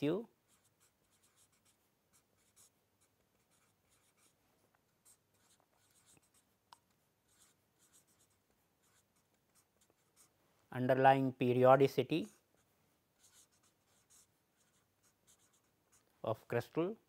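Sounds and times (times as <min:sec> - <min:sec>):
marker scratching on paper: 0:00.5 - 0:10.4, 0:12.2 - 0:16.1.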